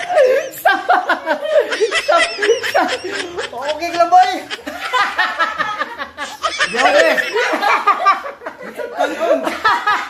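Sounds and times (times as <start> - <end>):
people talking: 0.0 - 4.6, 6.5 - 7.8
people laughing: 0.0 - 10.0.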